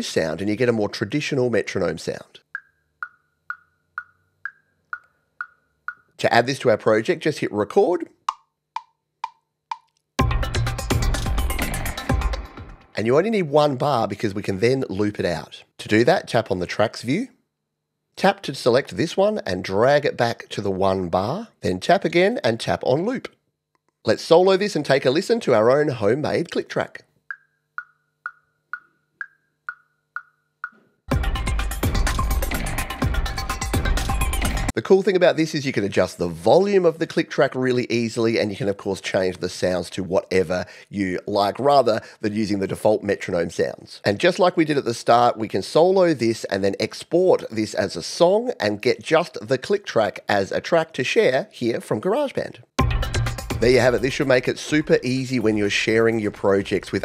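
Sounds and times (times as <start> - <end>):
woodblock metronome clicks: 2.4 - 6.2, 8.2 - 10.1, 27.3 - 30.8.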